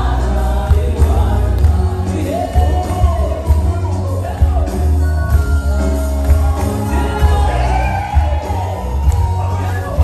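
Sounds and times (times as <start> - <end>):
band with heavy bass: 0.0 - 10.0
crowd singing worship music: 0.0 - 10.0.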